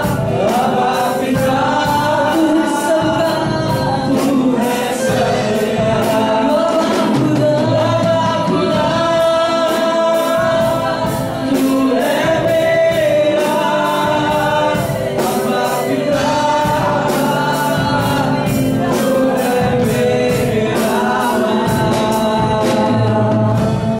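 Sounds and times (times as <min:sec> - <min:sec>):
men singing into microphones: 0:00.0 - 0:23.9
steady beat: 0:00.0 - 0:23.9.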